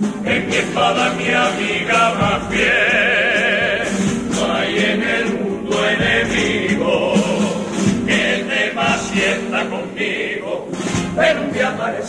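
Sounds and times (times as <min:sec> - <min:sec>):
guitars: 0:00.0 - 0:12.0
male choir singing: 0:00.0 - 0:12.0.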